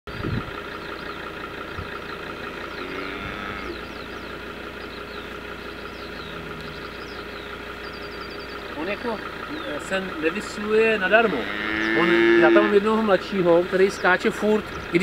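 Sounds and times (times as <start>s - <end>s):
engine idling hum: 0.1s - 15.0s
high falling chirps: 2.0s - 9.9s.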